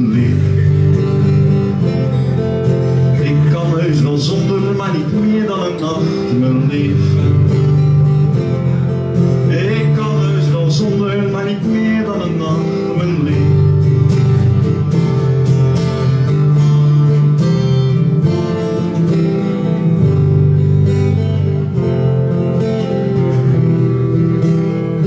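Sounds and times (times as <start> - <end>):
acoustic guitar strumming chords: 0.0 - 25.0.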